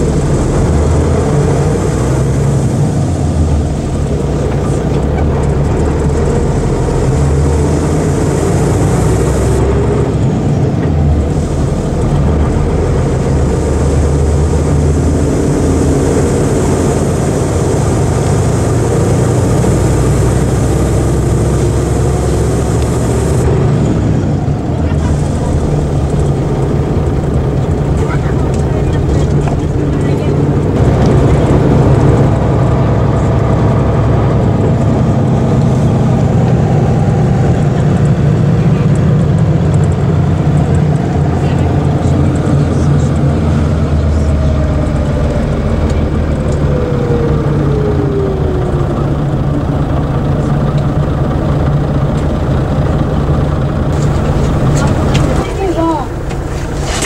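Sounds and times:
falling whine: 0.0s - 38.4s
bus diesel engine running: 0.0s - 57.0s.

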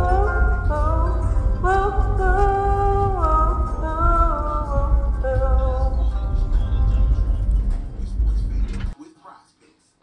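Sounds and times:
car rumble from inside: 0.0s - 9.0s.

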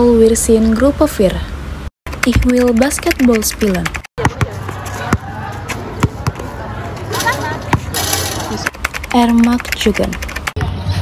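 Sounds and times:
basketballs bouncing on hard court: 4.2s - 5.3s, 5.9s - 6.4s.

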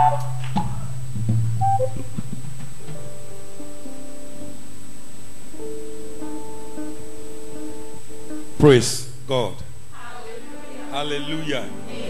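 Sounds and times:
short high keyboard notes: 0.0s - 1.0s, 1.6s - 2.2s, 5.6s - 9.7s
held low bass note: 0.0s - 2.7s, 8.6s - 9.8s.

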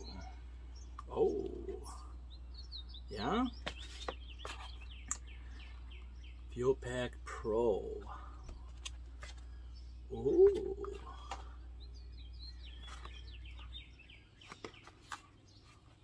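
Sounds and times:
bird chirping: 0.0s - 16.0s.

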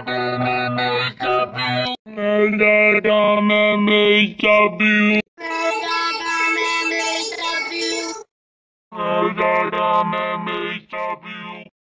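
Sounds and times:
processed synthetic sung voice: 0.0s - 8.3s, 8.9s - 11.7s.

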